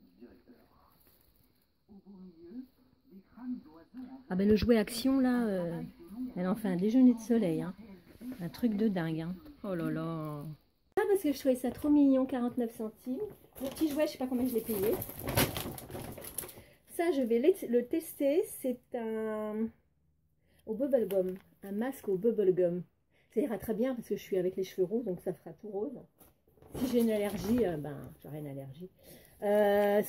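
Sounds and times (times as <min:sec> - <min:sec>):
bag rustling and crinkling: 0:13.5 - 0:16.7, 0:26.6 - 0:27.9.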